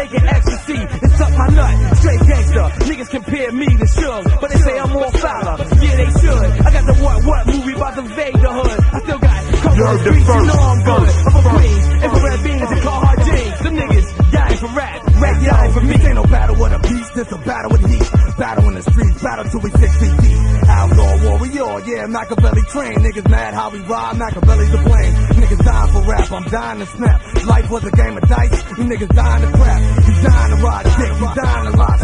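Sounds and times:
deep bassline: 0.0s - 32.0s
rapping over a beat: 0.0s - 32.0s.

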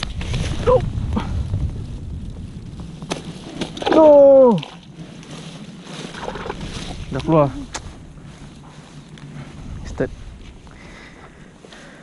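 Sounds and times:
leaves and grass brushing: 0.0s - 12.0s.

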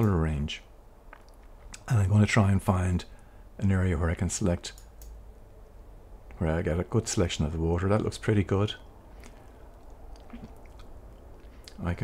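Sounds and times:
man speaking: 0.0s - 0.7s, 1.8s - 4.8s, 6.4s - 8.9s, 11.7s - 12.0s
low room hum: 0.0s - 12.0s
faint small clicks: 4.7s - 6.4s.

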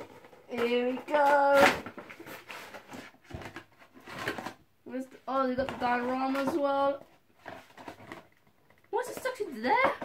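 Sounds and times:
cardboard box rustling and clicking: 0.0s - 4.6s.

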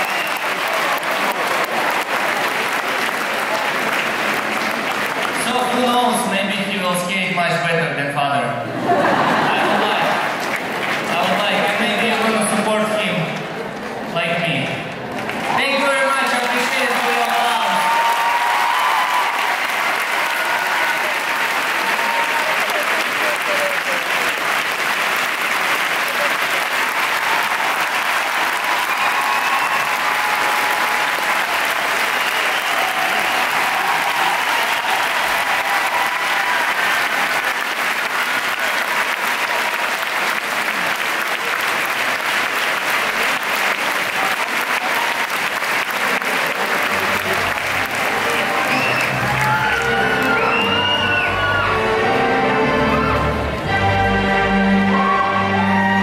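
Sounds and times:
audience applauding: 0.0s - 6.6s, 8.8s - 14.0s, 15.0s - 56.0s
music: 46.0s - 56.0s.

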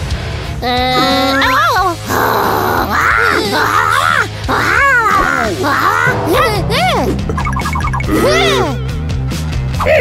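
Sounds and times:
background music: 0.0s - 10.0s
cartoon character grunting and whining: 0.6s - 7.0s, 8.1s - 8.8s.

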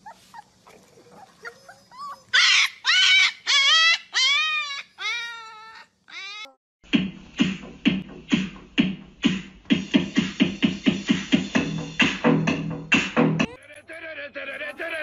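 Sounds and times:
puppies howling: 0.0s - 6.6s
music with steady beat: 6.8s - 13.5s.

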